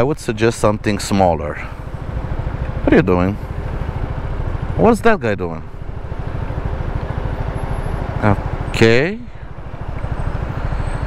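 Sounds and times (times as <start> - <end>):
road and wind noise: 0.0 - 11.0
scooter engine running: 0.9 - 4.9, 5.6 - 8.8.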